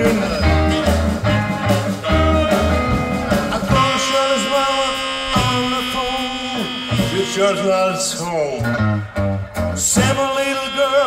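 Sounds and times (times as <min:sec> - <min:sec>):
drums: 0:00.0 - 0:11.0
electric guitar: 0:00.0 - 0:11.0
saxophone: 0:00.0 - 0:11.0
upright bass: 0:00.0 - 0:11.0.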